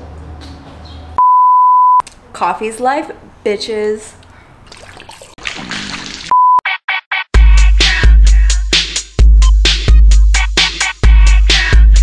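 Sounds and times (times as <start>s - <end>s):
censor bleep: 1.2s - 2.0s, 6.3s - 6.6s.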